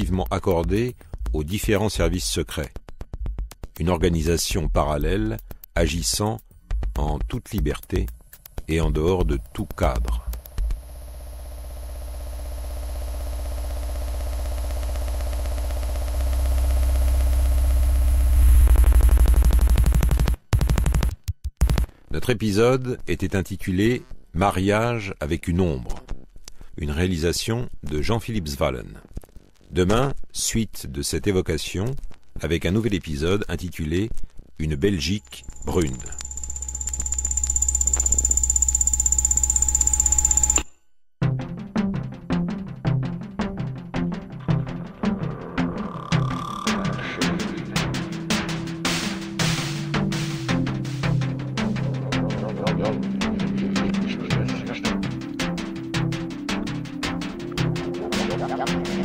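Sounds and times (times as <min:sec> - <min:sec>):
high electronic tone pulsing: 0:08.1 - 0:19.0, 0:34.9 - 0:40.7
low hum: 0:08.2 - 0:19.7, 0:34.9 - 0:40.8
pulsing synthesizer drone: 0:10.3 - 0:19.2, 0:55.1 - 0:59.0
faint mid tone: 0:34.9 - 0:40.9.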